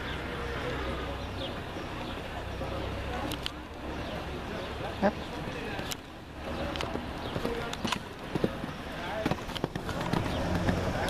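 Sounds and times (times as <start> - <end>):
horse hoofbeats on sand: 7.2 - 11.0.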